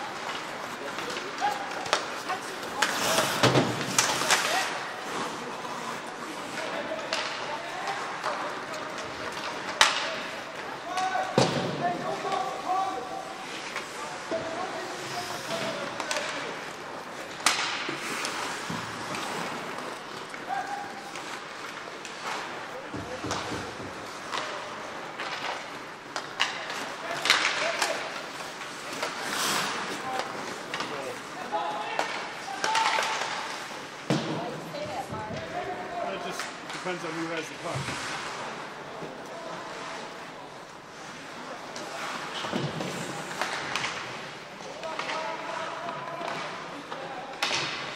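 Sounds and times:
hockey sticks and puck cracking: 0.0s - 47.9s.

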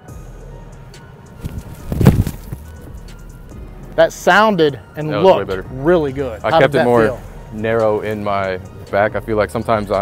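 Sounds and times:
boot kicking ball thud: 1.4s - 2.7s
soft footstep thud: 1.4s - 2.8s.

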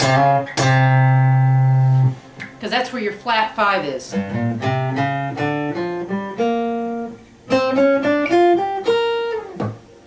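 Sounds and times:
acoustic guitar blues lick: 0.0s - 10.0s.

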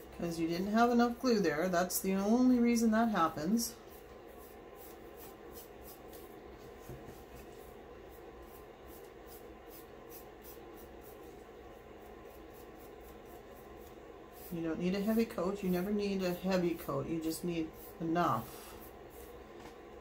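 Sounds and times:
paintbrush brushing strokes: 3.2s - 20.0s.

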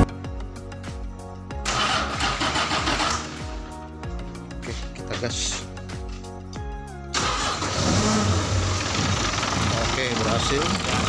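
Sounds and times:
music with deep beat: 0.0s - 1.7s, 3.3s - 7.1s
diesel engine starting: 1.6s - 3.6s, 7.1s - 11.0s.

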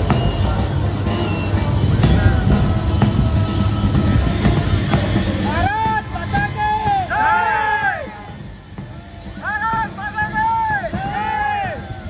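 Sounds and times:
heavy low rumble: 0.0s - 12.0s
military band music: 0.0s - 12.0s.

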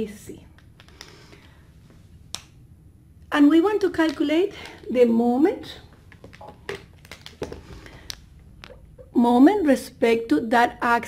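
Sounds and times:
faint low room hum: 0.0s - 11.0s.

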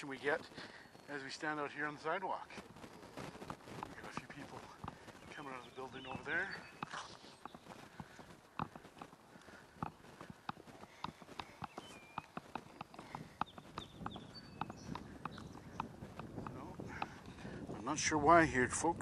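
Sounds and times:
loose camera rattling on tripod: 2.4s - 18.8s.

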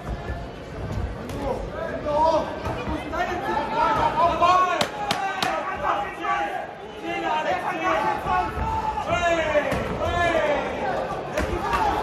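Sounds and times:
people shouting: 3.2s - 12.0s.

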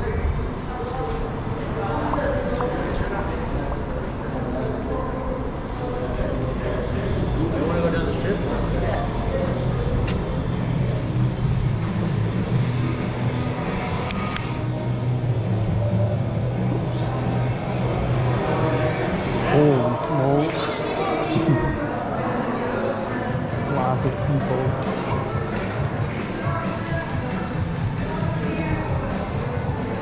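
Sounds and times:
faint background music: 0.0s - 30.0s.

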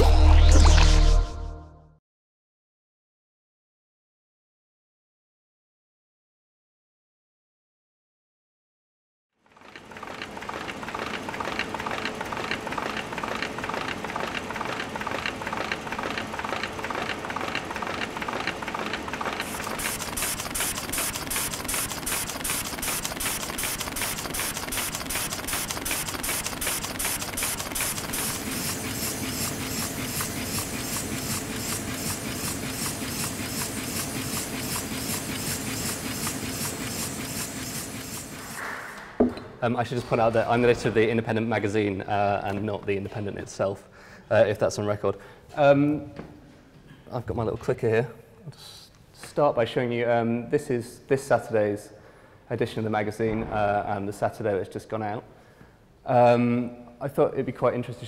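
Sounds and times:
printing press clatter: 9.6s - 38.9s.

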